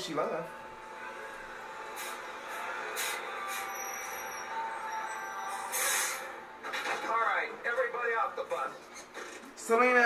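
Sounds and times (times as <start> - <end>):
bus engine running: 0.7 - 5.0
air brakes hissing: 1.9 - 4.6, 5.2 - 6.4.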